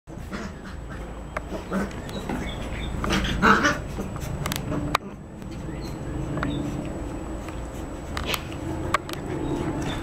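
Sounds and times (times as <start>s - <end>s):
puppies growling and yipping: 0.1s - 10.0s.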